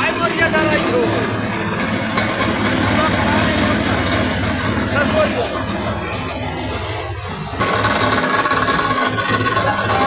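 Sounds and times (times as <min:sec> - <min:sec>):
rice milling machine droning: 0:00.0 - 0:10.0.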